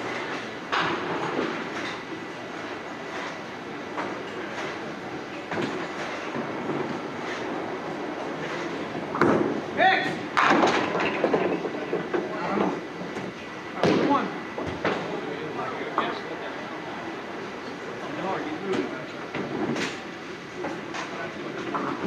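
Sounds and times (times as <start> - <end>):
bowling alley rumble: 4.1 - 15.4
bowling pins crashing: 10.3 - 11.8.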